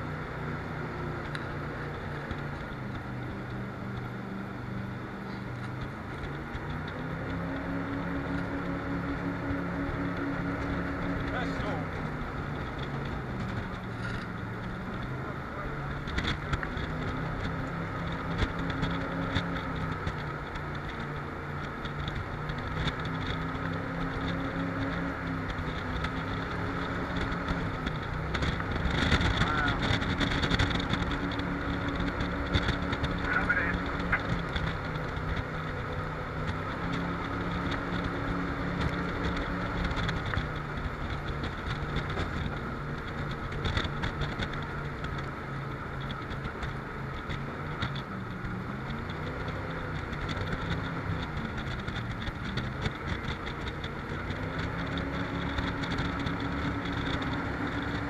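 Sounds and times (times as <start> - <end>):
jet boat engine running: 0.0 - 58.0.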